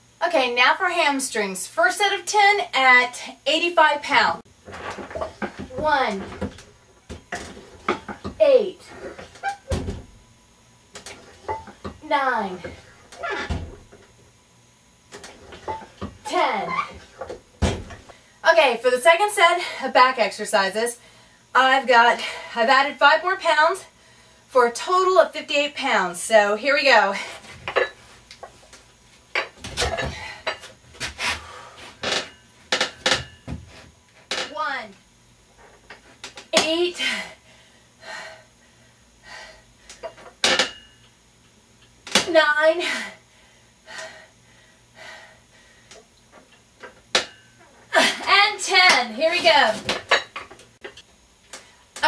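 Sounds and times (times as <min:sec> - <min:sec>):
forceful breathing: 0:42.8 - 0:46.0.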